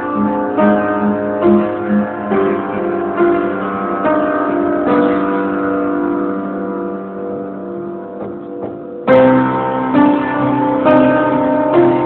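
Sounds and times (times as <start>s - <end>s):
piano chord held: 0.0s - 12.0s
soft piano touches: 7.3s - 9.7s.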